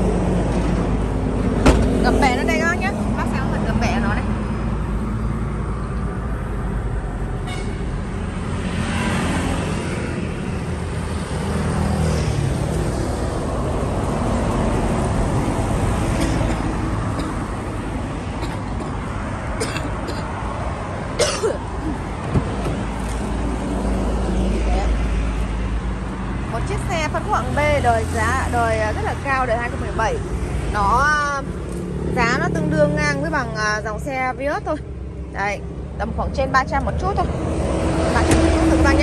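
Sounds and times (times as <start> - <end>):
road traffic rumble: 0.0 - 39.0.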